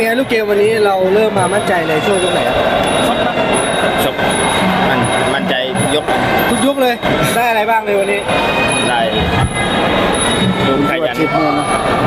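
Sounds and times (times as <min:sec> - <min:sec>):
faint voices: 0:00.0 - 0:12.0
high-pitched tones: 0:00.0 - 0:12.0
loud steady background din: 0:00.0 - 0:12.0.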